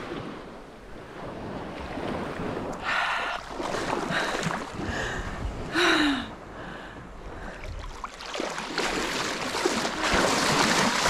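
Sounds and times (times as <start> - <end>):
wind on microphone: 0.0 - 8.0.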